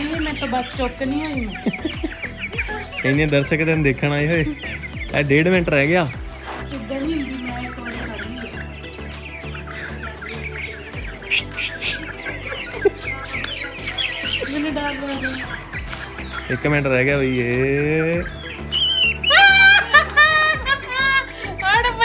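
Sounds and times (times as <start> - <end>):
background music: 0.0 - 22.0
chickens clucking: 0.0 - 22.0.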